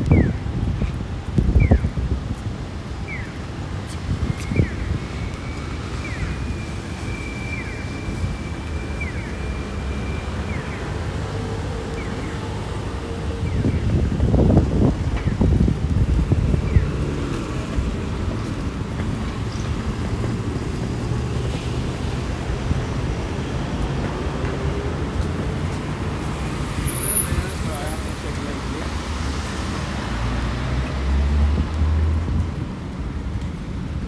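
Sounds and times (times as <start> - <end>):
cars passing: 0.0 - 34.0.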